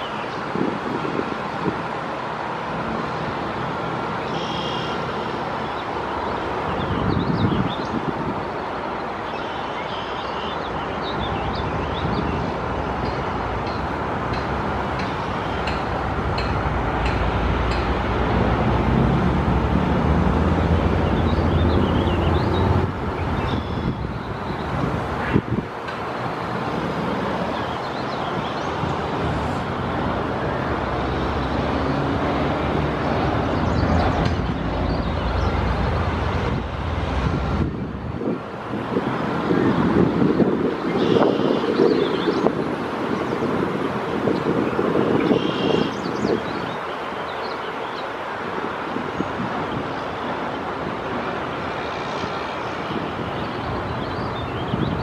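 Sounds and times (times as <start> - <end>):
wind on microphone: 0.0 - 2.1, 6.6 - 8.7, 15.2 - 47.0, 48.4 - 55.0
road traffic noise: 0.0 - 55.0.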